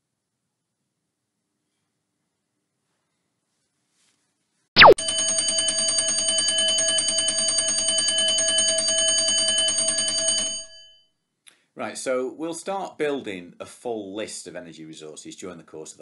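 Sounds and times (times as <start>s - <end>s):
rapidly repeating bell ring: 5.0s - 11.0s.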